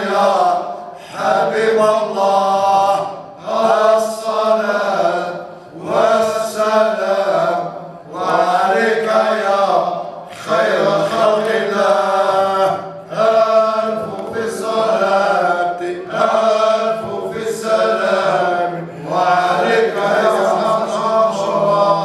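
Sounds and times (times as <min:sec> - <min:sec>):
men chanting: 0:00.0 - 0:22.0.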